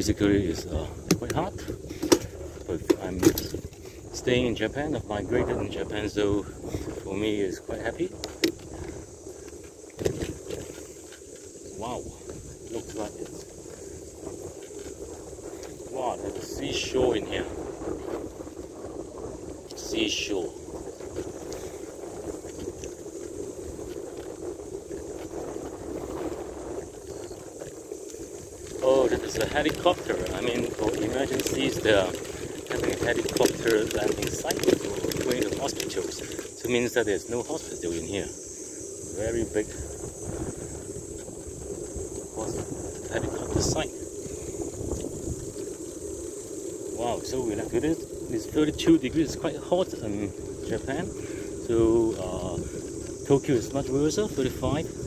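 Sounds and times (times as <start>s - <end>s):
high-pitched insect drone: 0.0s - 55.0s
tyre and road rumble: 0.0s - 55.0s
wind rushing over microphone: 0.0s - 55.0s.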